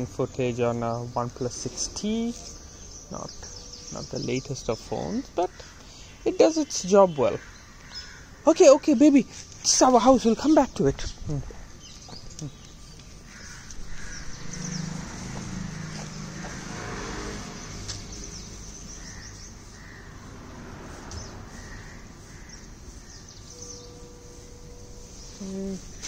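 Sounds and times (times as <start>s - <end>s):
birds chirping: 0.0s - 26.0s
lower bird calls: 11.0s - 26.0s.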